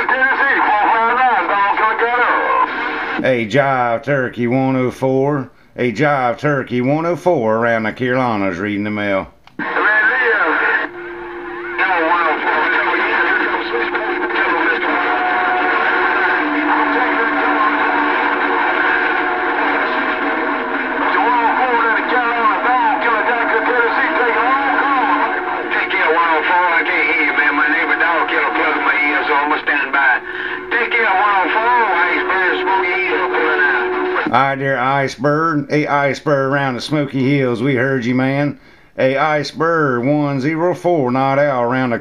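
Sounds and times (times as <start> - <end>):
garbled radio voices: 0.0 - 3.4, 9.6 - 34.7.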